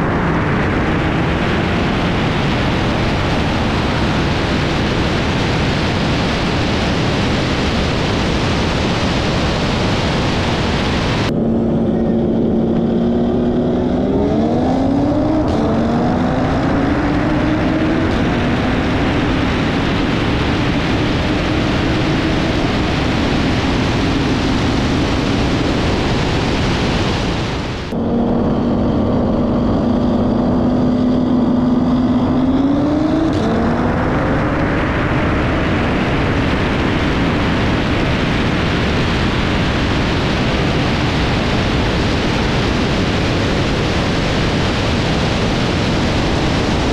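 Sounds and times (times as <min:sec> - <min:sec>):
wind roar on microphone: 0:00.0 - 0:46.9
car engine accelerating: 0:10.8 - 0:46.9.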